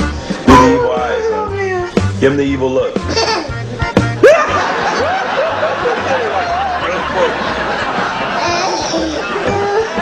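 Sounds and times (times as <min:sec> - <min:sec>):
background music with bass line: 0:00.0 - 0:10.0
people laughing: 0:04.2 - 0:10.0.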